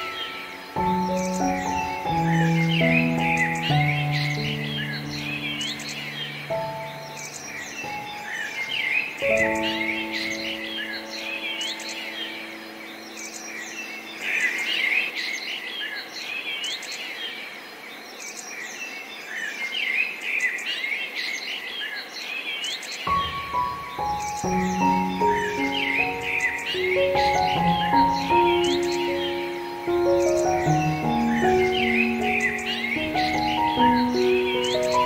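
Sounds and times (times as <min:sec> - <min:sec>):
soft slow piano: 0:00.0 - 0:16.1, 0:23.0 - 0:35.0
songbirds chirping: 0:00.0 - 0:35.0.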